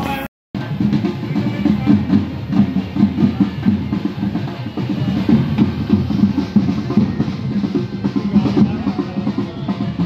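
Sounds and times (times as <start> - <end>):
bass drum beating: 0.0 - 10.0
marching band drums: 0.0 - 10.0.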